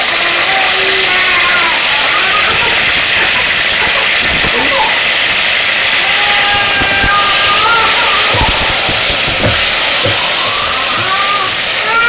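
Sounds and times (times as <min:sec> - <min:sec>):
vegetables sizzling in hot oil: 0:00.2 - 0:12.0
wooden spoon knocking against pot: 0:08.3 - 0:11.4.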